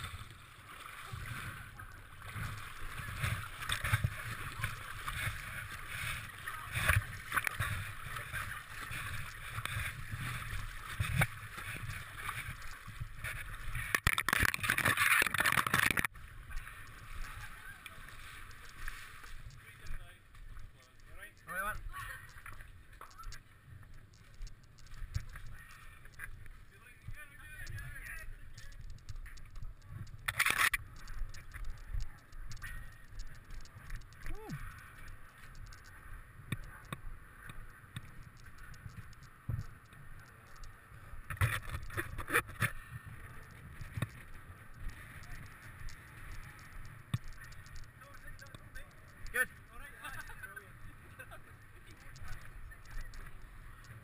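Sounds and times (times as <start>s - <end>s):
water sloshing and splashing: 0.0s - 26.7s.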